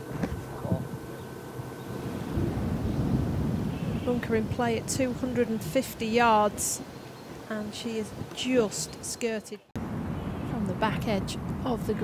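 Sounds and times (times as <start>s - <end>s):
wind buffeting microphone: 1.8s - 9.2s.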